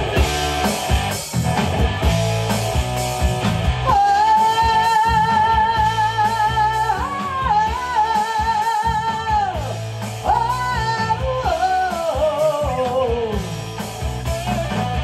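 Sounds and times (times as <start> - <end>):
bass guitar: 0.0 - 15.0
drum kit: 0.0 - 15.0
electric guitar: 0.0 - 15.0
woman singing: 3.8 - 13.5.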